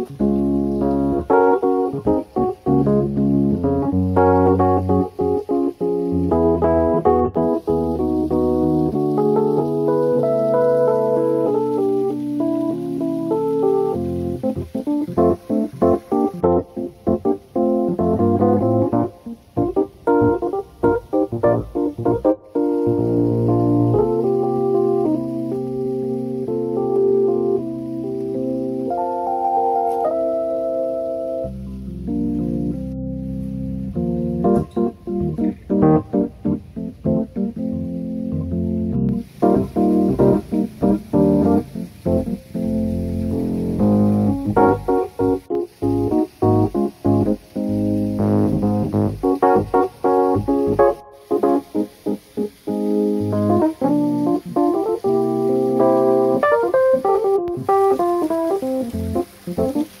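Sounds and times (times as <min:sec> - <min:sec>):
keyboard melody: 0:00.0 - 1:00.0
steady hiss: 0:00.0 - 1:00.0.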